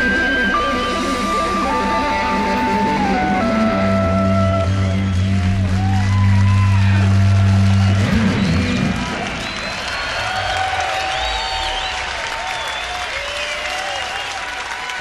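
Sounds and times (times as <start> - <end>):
crowd applauding and cheering: 0.0 - 15.0.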